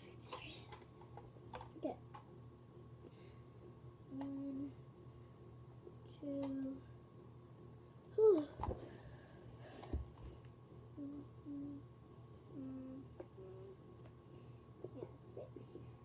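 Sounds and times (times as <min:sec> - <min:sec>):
child humming short notes: 0:11.0 - 0:11.8, 0:12.6 - 0:13.7.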